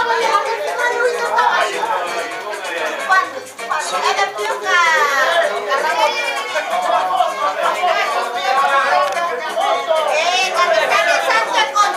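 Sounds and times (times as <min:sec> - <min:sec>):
chatter of many people: 0:00.0 - 0:11.9.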